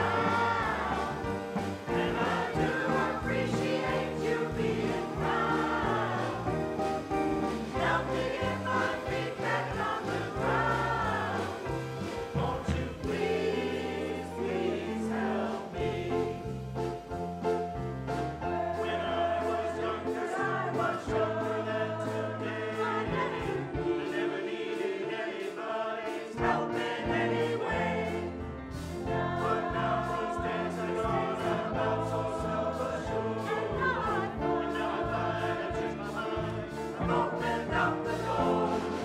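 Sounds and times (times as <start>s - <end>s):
steady bass line: 0.0s - 13.5s
instrumental accompaniment: 0.0s - 39.0s
mixed choir singing: 0.0s - 39.0s.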